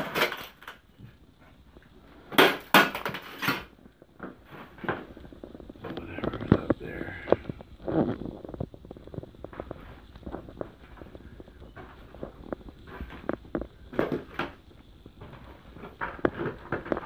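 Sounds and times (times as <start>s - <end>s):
plaster debris crunching underfoot: 0.0s - 17.0s.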